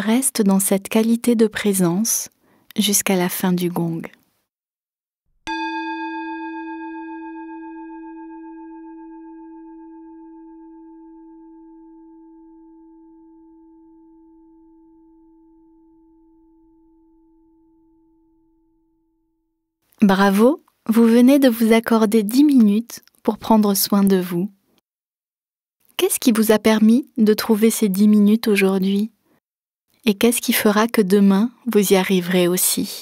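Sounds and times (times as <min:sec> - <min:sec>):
meditation gong ringing: 0:05.5 - 0:18.6.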